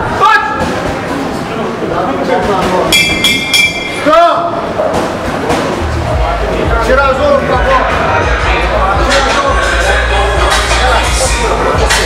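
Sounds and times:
voices in venue: 0:00.0 - 0:12.0
boxing ring bell: 0:02.9 - 0:04.0.

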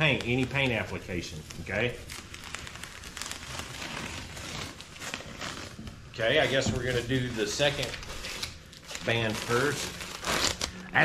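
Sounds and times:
tape peeling with fine crackling: 0:00.0 - 0:11.0.

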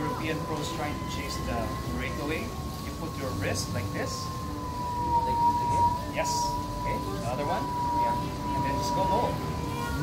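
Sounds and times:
bike on trainer whining: 0:00.0 - 0:10.0.

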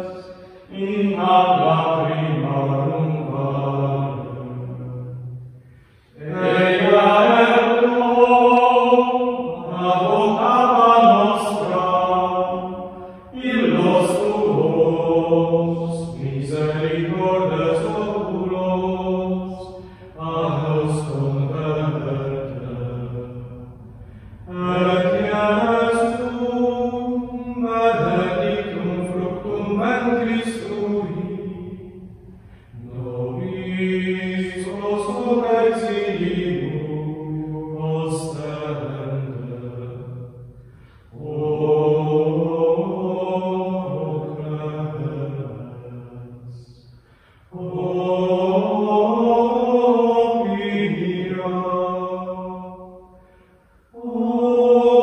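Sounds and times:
men singing a chant: 0:00.0 - 0:04.8, 0:06.2 - 0:31.8, 0:32.6 - 0:40.2, 0:41.1 - 0:46.8, 0:47.5 - 0:52.8, 0:53.9 - 0:55.0.

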